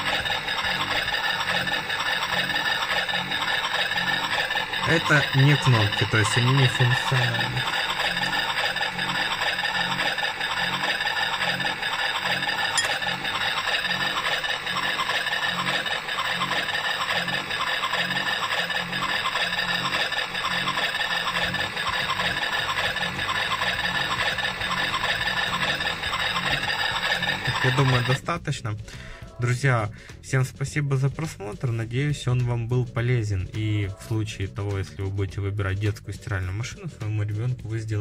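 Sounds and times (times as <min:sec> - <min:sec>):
toy washing machine rattling whir: 0:00.0 - 0:28.2.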